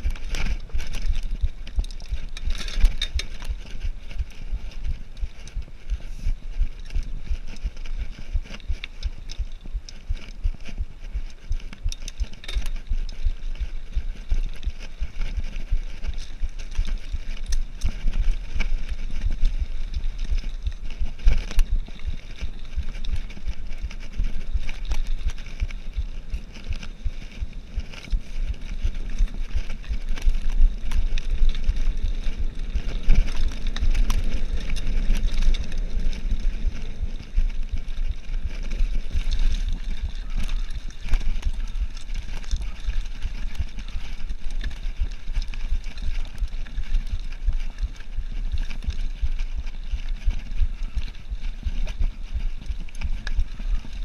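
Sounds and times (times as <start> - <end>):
bike rattling over bumps: 0.0 - 54.0
tyre noise on dirt: 0.0 - 54.0
wind buffeting microphone: 0.0 - 54.0.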